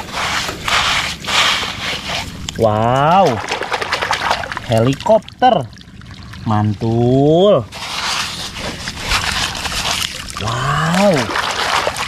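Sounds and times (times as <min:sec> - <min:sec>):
hand scraping wet sand: 0:00.0 - 0:05.0, 0:07.7 - 0:12.0.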